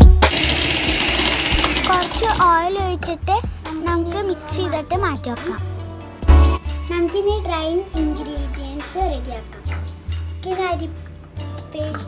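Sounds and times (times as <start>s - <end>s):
electric hand mixer whirring: 0.0s - 2.4s
background music: 0.0s - 12.0s.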